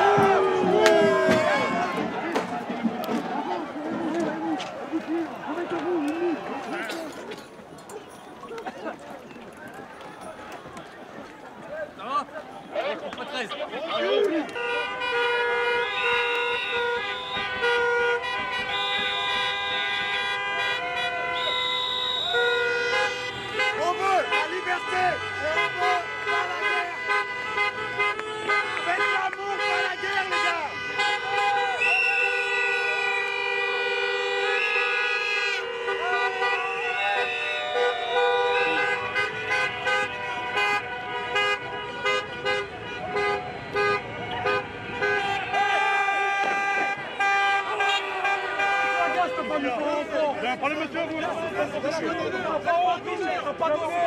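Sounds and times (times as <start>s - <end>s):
car horns honking: 0.0s - 8.6s, 9.8s - 54.0s
people shouting and cheering: 0.0s - 27.3s, 27.9s - 40.8s, 42.8s - 54.0s
high whistle blown: 21.2s - 22.5s, 31.6s - 32.6s, 34.4s - 35.5s, 36.3s - 39.0s.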